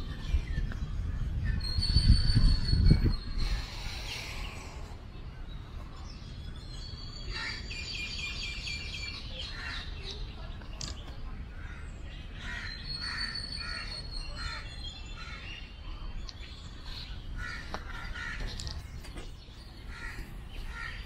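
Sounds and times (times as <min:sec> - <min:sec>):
birds calling: 0:00.0 - 0:21.0.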